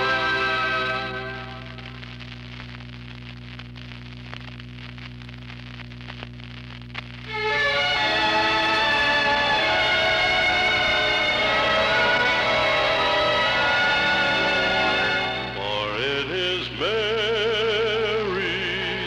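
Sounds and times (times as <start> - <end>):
music with sustained notes: 0.0 - 2.0, 7.3 - 16.2
low electrical hum: 0.0 - 19.0.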